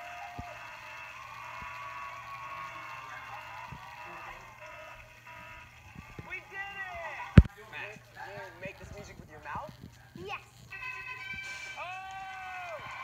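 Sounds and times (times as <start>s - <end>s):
high voices shouting: 0.0s - 7.5s, 10.6s - 13.0s
audience cheering through speakers: 0.0s - 7.8s, 10.7s - 13.0s.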